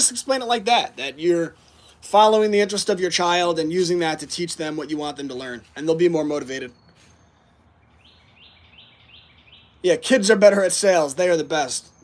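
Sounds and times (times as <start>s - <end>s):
bird singing faintly: 1.6s - 12.0s.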